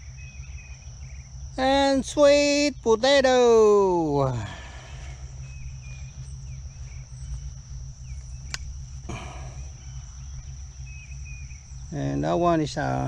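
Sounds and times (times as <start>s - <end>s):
insects droning: 0.0s - 13.0s
sharp click: 8.4s - 8.7s.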